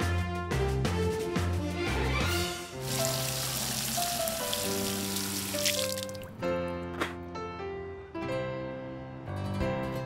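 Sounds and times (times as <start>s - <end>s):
light background music: 0.0s - 10.0s
liquid gushing from a hose: 2.8s - 6.3s.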